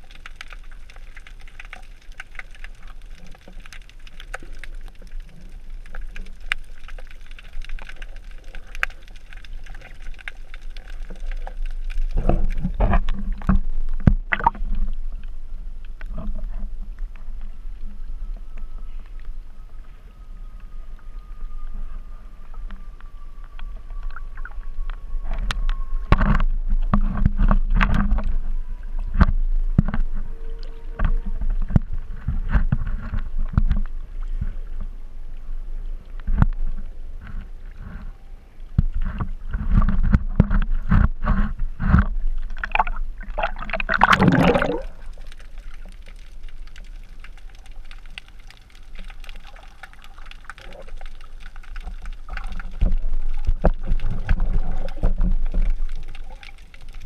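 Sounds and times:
sea water sloshing and splashing: 0:23.5 - 0:35.0, 0:36.1 - 0:57.0.

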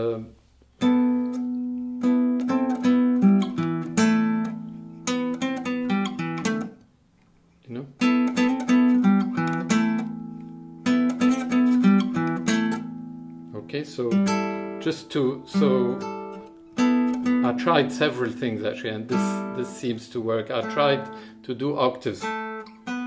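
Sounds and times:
classical guitar fingerstyle: 0:00.7 - 0:23.0.

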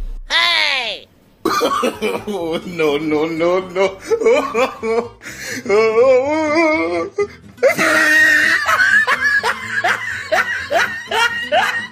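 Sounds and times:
person laughing: 0:01.5 - 0:03.0, 0:03.7 - 0:07.0, 0:07.6 - 0:11.9.

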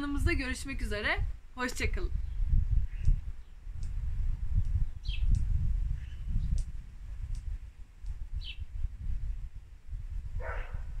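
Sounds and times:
wind rumble on microphone: 0:00.0 - 0:11.0
bird chirps: 0:05.0 - 0:05.3.

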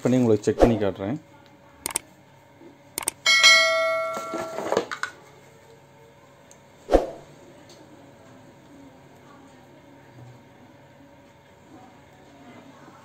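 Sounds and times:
mouse clicks: 0:01.8 - 0:02.0, 0:03.0 - 0:03.2
bell chime: 0:03.2 - 0:04.6.

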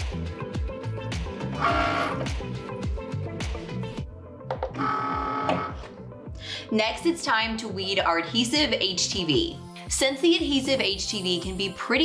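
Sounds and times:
background music with steady beat: 0:00.0 - 0:12.0
cutting machine motors whining: 0:01.6 - 0:02.2, 0:04.8 - 0:05.8.

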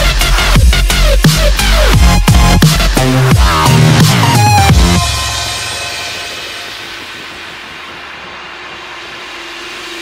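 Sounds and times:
hissing electronic music build-up: 0:00.0 - 0:10.0.

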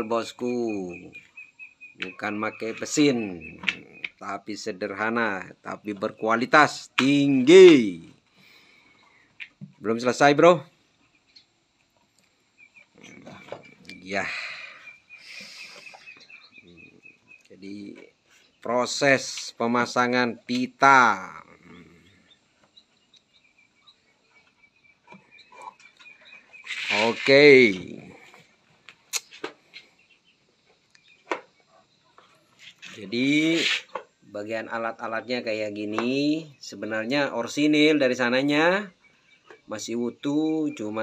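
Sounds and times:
faint bird chirps: 0:00.0 - 0:41.0.

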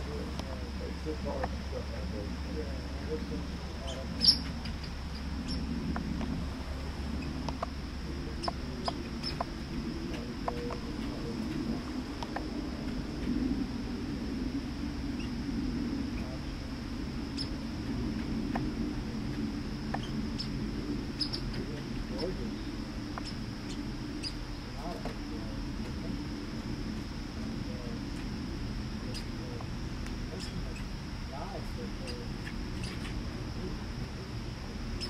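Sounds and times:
high-pitched hiss: 0:00.0 - 0:35.0
low outdoor rumble: 0:00.0 - 0:35.0
squirrel squeaking and chirping: 0:03.9 - 0:06.1, 0:08.4 - 0:09.7, 0:17.3 - 0:17.6, 0:19.9 - 0:21.6, 0:32.1 - 0:33.2.

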